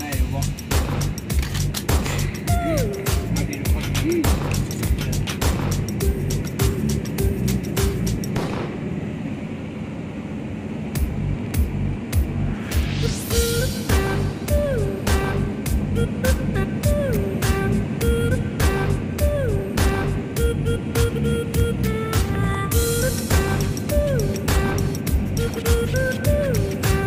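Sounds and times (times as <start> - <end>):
background music with steady beat: 0.0 - 8.7, 11.0 - 27.0
rising sweep: 0.0 - 27.0.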